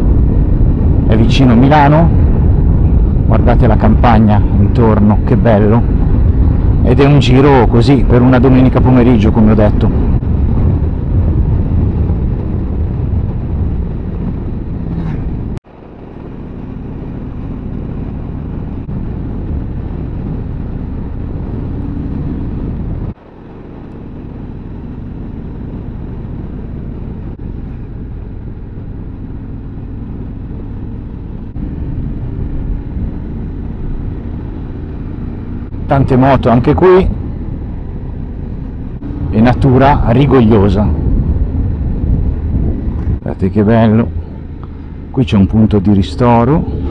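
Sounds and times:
motorcycle engine cruising: 0.0 - 46.9
wind and road noise: 0.0 - 46.9.

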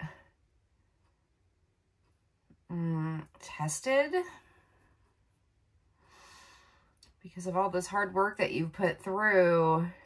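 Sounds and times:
soft breath: 5.9 - 7.0.

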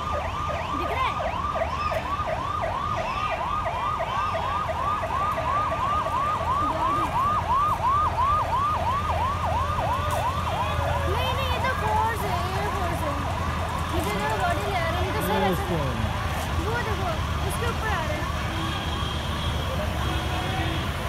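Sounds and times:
siren yelping: 0.0 - 16.0
truck engines rumbling: 0.0 - 21.0.

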